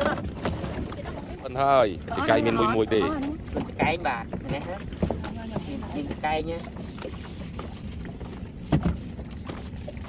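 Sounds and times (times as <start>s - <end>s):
fish knocking and slapping: 0.0s - 1.4s, 3.0s - 10.0s.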